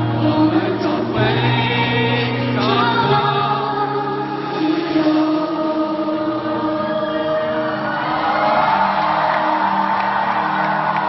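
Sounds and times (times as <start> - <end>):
live pop band: 0.0 - 11.0
stadium crowd singing along: 0.0 - 11.0.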